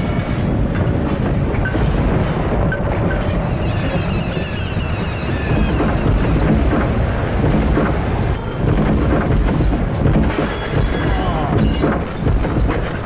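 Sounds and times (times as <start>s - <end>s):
loud low rumbling: 0.0s - 13.0s.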